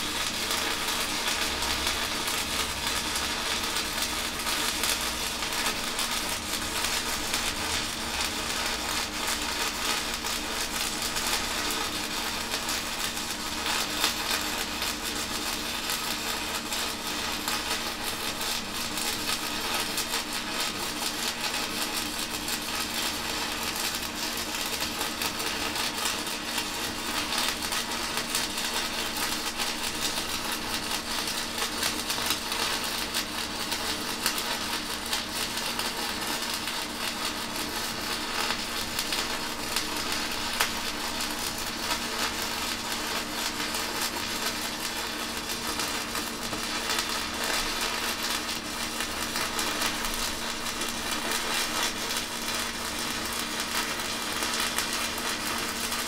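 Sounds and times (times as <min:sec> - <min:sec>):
welding arc crackling hiss: 0:00.0 - 0:56.0.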